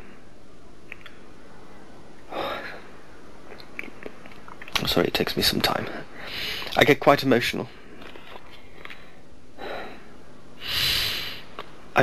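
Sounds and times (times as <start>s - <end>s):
man drawing deep breath: 8.8s - 11.5s.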